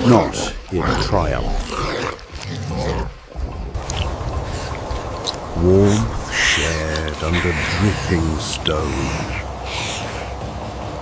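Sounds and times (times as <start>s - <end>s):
ape-like growls and grunts: 0.0s - 10.4s
rain hissing: 0.0s - 11.0s.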